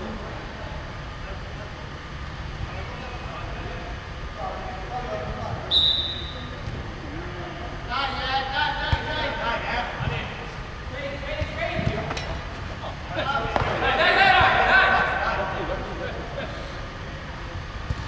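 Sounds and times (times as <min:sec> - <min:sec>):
referee's whistle: 0:05.7 - 0:06.6
men shouting: 0:13.2 - 0:15.5.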